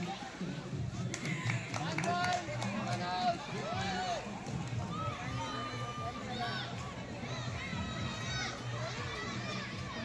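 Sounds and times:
young voices shouting: 4.9s - 10.0s.

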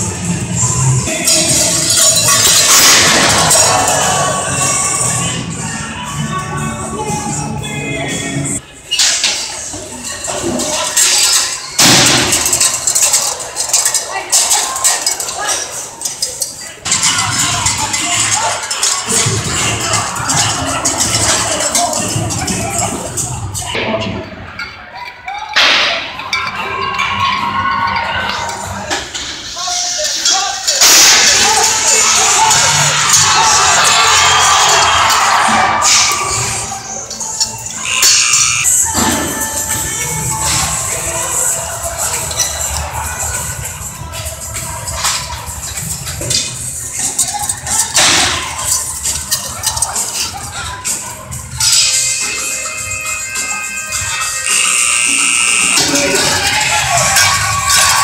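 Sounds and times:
arena music: 0.0s - 8.7s, 32.2s - 58.0s
people shouting: 1.1s - 5.3s, 30.9s - 37.0s, 54.4s - 58.0s
metal bangs and clatter: 1.3s - 4.0s, 10.3s - 15.3s
crowd cheering: 2.4s - 6.0s, 26.1s - 28.9s, 31.1s - 44.2s, 54.3s - 58.0s.

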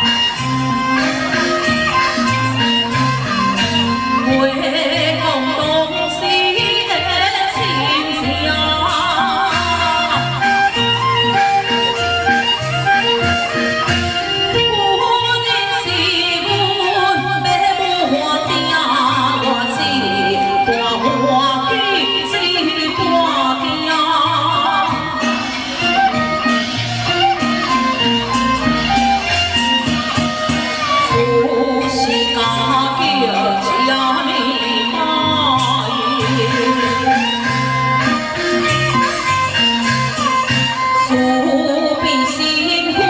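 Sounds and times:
instrumental accompaniment: 0.0s - 43.0s
person singing with vibrato: 31.0s - 37.8s.

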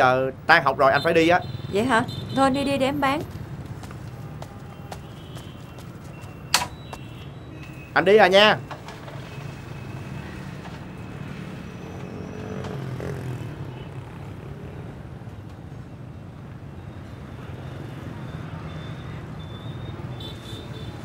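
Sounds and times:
street traffic hum: 0.0s - 21.0s
vehicle passing: 9.0s - 15.0s.

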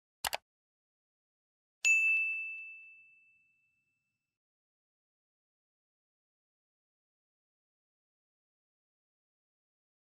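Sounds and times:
notification bell ding: 1.8s - 4.0s.

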